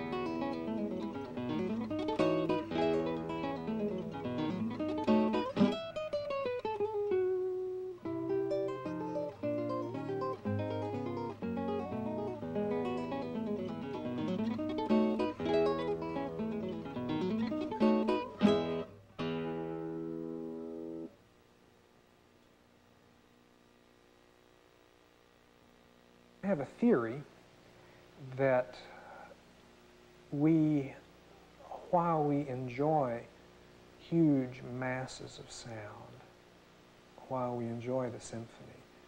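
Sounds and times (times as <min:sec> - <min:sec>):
classical guitar fingerstyle: 0:00.0 - 0:21.1.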